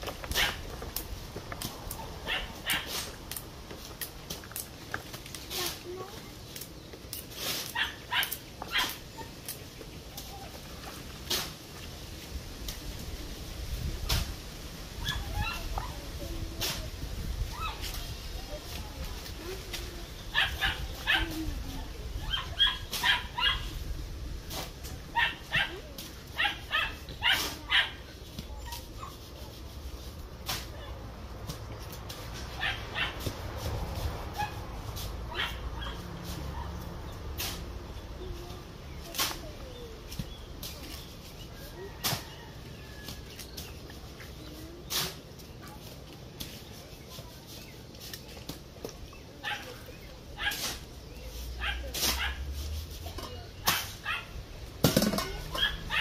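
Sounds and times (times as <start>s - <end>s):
dog barking: 25.1s - 25.8s, 26.4s - 28.0s, 35.3s - 36.0s, 51.6s - 52.4s, 53.6s - 54.4s, 55.5s - 56.0s.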